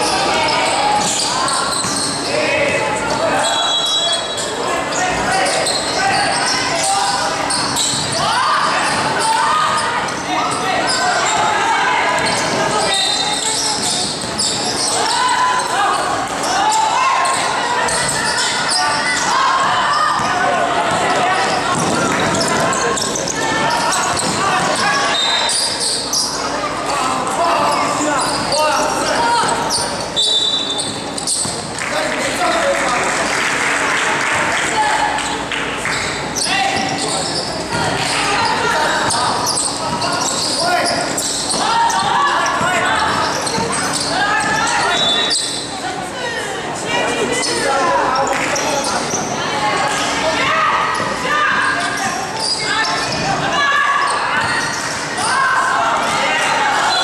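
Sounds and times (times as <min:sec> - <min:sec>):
people shouting and chattering: 0:00.0 - 0:57.0
basketball bouncing on court: 0:19.6 - 0:24.9, 0:41.0 - 0:44.6.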